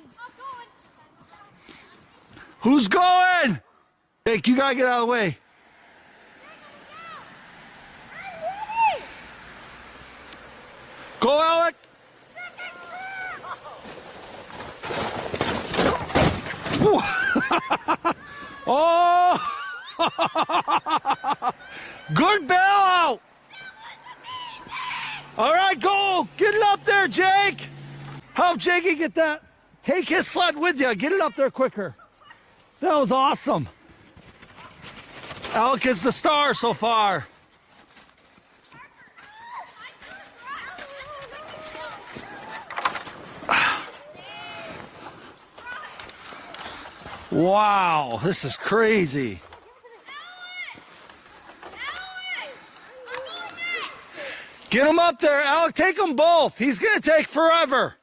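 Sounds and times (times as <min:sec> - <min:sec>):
distant children calling and shouting: 0:00.0 - 0:55.4
sled scraping over snow: 0:06.0 - 0:29.1, 0:29.9 - 0:57.4.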